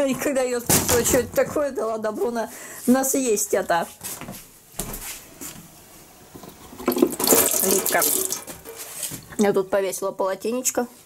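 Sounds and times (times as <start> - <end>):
water splashing into a sink: 6.7 - 8.5.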